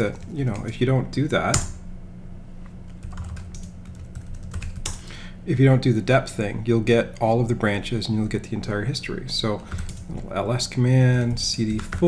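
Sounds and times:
computer keyboard typing: 3.0s - 5.0s, 9.6s - 10.3s, 11.0s - 12.0s.

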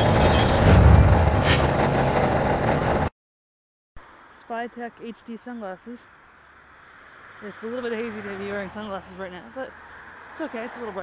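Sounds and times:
mechanical clanking: 0.0s - 3.1s.

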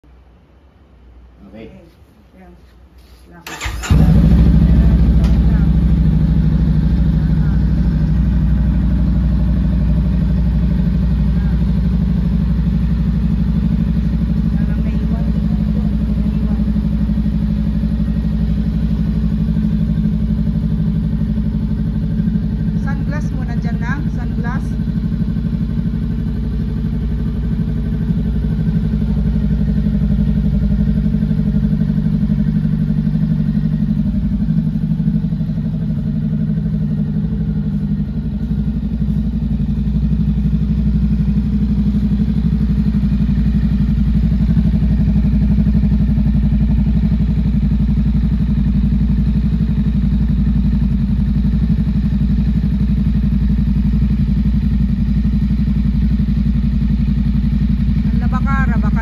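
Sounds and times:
motorcycle engine idling: 3.5s - 59.0s.

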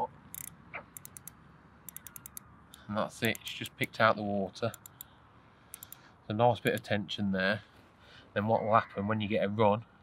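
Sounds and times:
fishing reel clicking: 0.3s - 1.3s, 1.9s - 2.4s, 5.7s - 6.0s.

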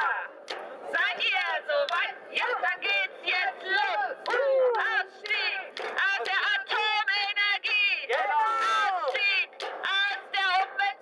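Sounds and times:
voice through megaphone: 0.0s - 11.0s
women shouting protest chant: 0.0s - 11.0s.

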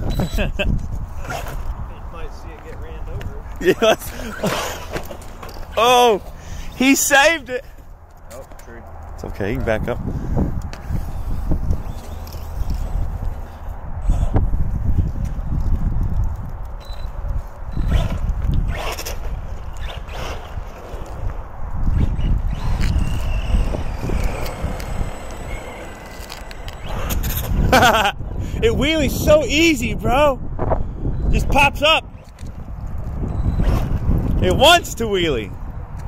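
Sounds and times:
person laughing: 0.0s - 0.8s, 3.5s - 5.0s, 27.5s - 28.3s
wind rumble on microphone: 0.0s - 6.8s, 7.8s - 36.0s
electric motor whine: 10.9s - 14.4s, 21.9s - 28.0s.

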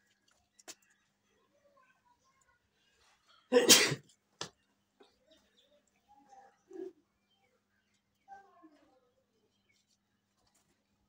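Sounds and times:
person sneezing: 3.5s - 4.0s.

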